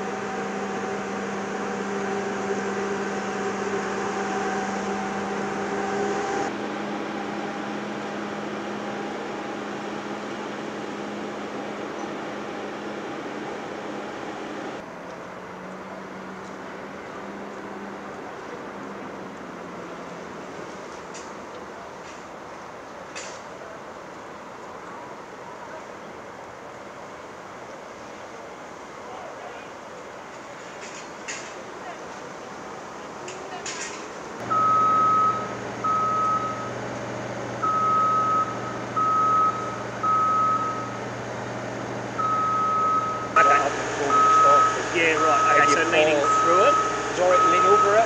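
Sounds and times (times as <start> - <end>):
low engine hum: 0.0 - 21.1, 34.2 - 48.0
outdoor background noise: 0.0 - 48.0
machine warning beeper: 34.4 - 36.8, 37.6 - 41.0, 42.2 - 48.0.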